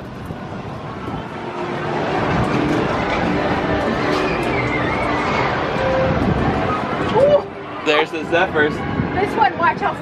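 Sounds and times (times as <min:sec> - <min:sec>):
ferris wheel gondola rumble: 0:00.0 - 0:10.0.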